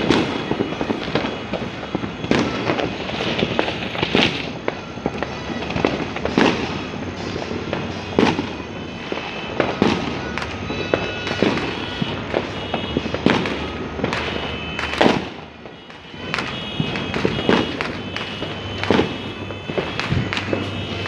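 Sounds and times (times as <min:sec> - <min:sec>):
distant firecracker crackle: 0:00.0 - 0:21.0
firework bangs: 0:00.0 - 0:21.0.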